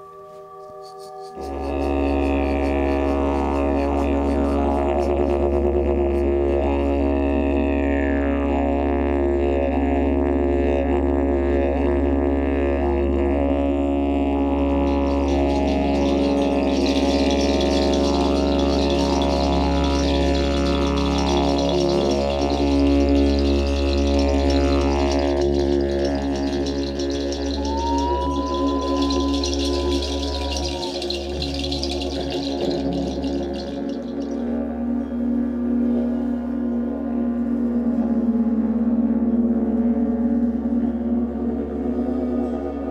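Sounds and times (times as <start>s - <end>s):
didgeridoo drone: 0.0s - 42.9s
gong shimmering: 14.5s - 35.2s
sliding vocalised calls: 14.7s - 34.6s.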